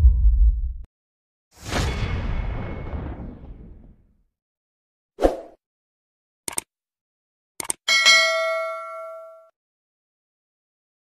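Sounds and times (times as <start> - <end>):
bright bell ding: 7.9 - 9.5.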